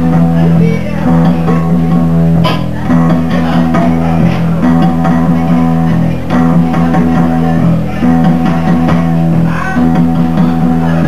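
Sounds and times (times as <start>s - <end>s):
electric guitar: 0.0s - 11.0s
live band playing loudly: 0.0s - 11.0s.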